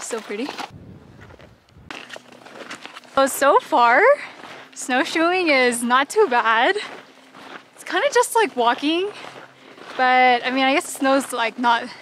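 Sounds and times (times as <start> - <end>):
snowshoes crunching on snow: 0.0 - 12.0.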